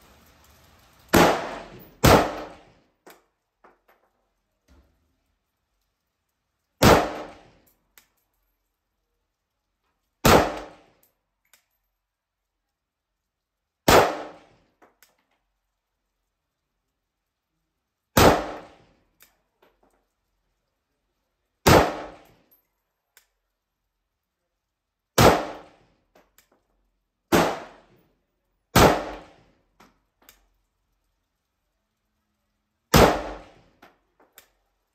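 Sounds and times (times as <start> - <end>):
rifle shot echoing: 1.1 - 2.6, 6.8 - 7.4, 10.2 - 10.8, 13.9 - 14.5, 18.2 - 18.8, 21.6 - 22.2, 25.2 - 25.8, 27.3 - 27.9, 28.8 - 29.4, 32.9 - 33.6
faint click: 22.2 - 23.5.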